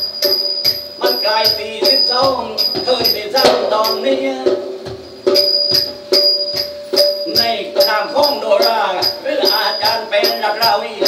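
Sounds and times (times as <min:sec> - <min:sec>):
metallic percussion strokes: 0:00.0 - 0:11.0
steady held tone: 0:00.0 - 0:11.0.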